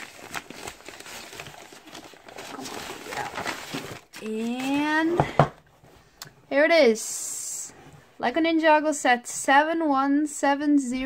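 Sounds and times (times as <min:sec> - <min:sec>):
mailer bag crinkling: 0:00.0 - 0:05.0.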